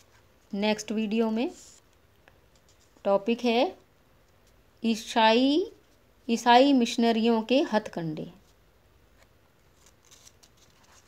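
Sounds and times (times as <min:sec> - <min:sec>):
book pages rustling: 0:01.6 - 0:03.1, 0:08.4 - 0:11.0.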